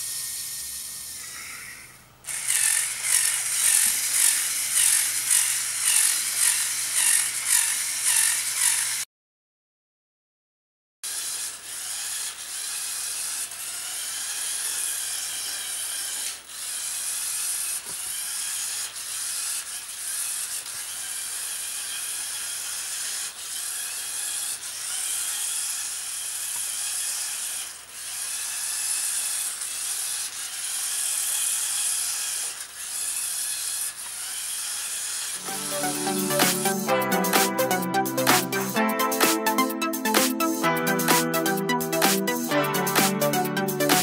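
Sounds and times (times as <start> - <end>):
toy motor and plastic gears running: 0.0 - 9.1, 11.0 - 37.5.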